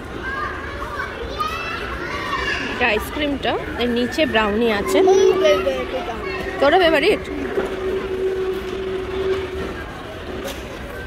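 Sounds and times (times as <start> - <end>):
background chatter: 0.0 - 11.0
child calling out: 4.6 - 6.6.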